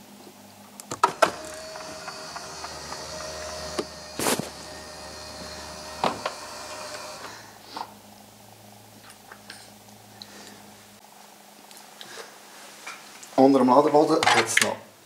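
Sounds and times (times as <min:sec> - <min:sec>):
electric seat motor humming: 0:00.9 - 0:07.6.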